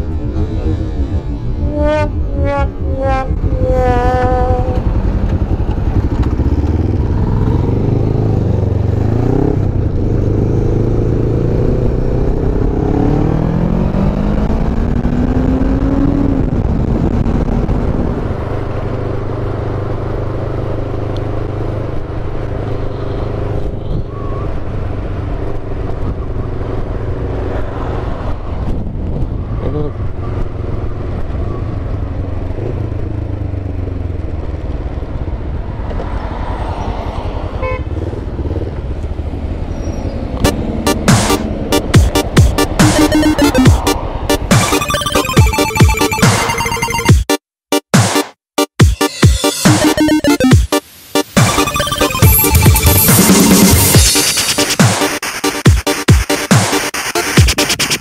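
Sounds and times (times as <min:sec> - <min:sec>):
wind rushing over microphone: 0:00.0 - 0:19.2, 0:23.6 - 0:31.5
motorcycle engine: 0:00.0 - 0:28.2.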